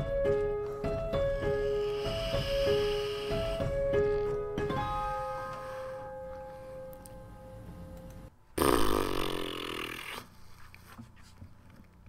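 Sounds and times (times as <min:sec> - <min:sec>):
music: 0:00.0 - 0:08.3.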